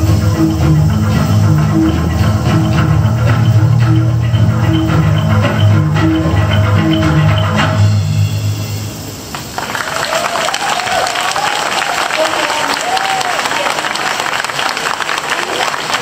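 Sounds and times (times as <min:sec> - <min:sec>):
audience applause: 0:09.3 - 0:16.0.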